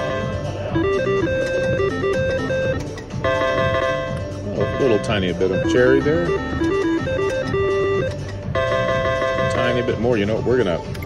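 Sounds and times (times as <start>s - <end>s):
slot machine reel-spin music: 0.0s - 11.0s.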